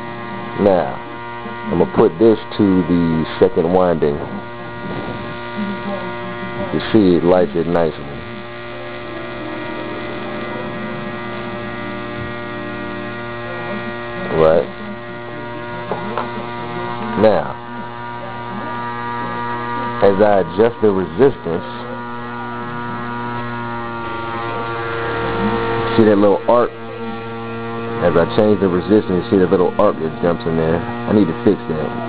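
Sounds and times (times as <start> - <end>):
electrical motor buzzing hum: 0.0 - 32.0.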